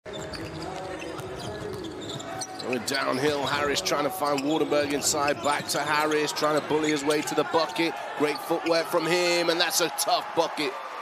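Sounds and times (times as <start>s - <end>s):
arena crowd voices: 2.3s - 11.0s.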